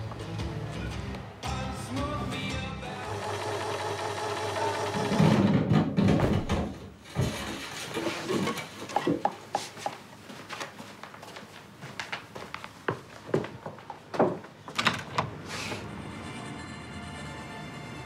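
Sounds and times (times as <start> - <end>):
sewing machine stitching: 3.1 - 5.5.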